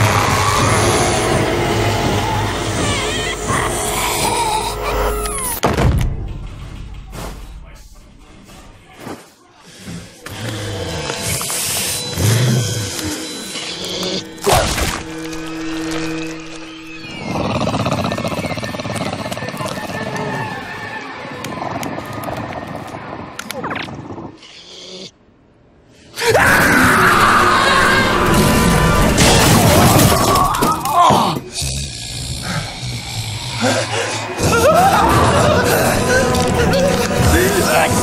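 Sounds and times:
low held drone: 0.0 - 5.6, 10.7 - 19.9, 31.6 - 38.0
eerie horror music: 0.0 - 8.7, 9.7 - 23.6, 26.2 - 38.0.

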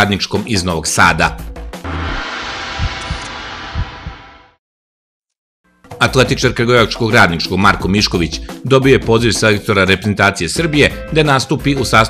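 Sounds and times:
deep heartbeat-like thumps: 1.8 - 4.6
whooshing noise: 1.8 - 4.6.

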